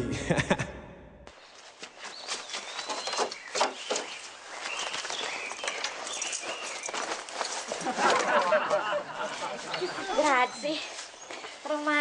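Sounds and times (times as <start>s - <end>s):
birds chirping: 1.3s - 12.0s.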